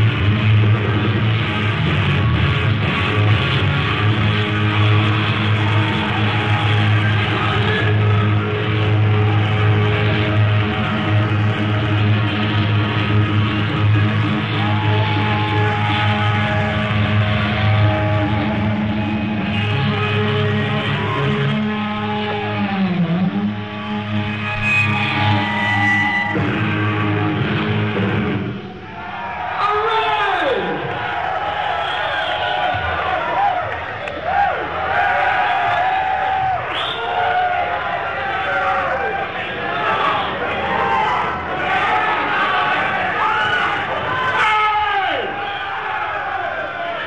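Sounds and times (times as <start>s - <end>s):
live hard rock band: 0.0s - 28.7s
distorted electric guitar: 0.0s - 29.0s.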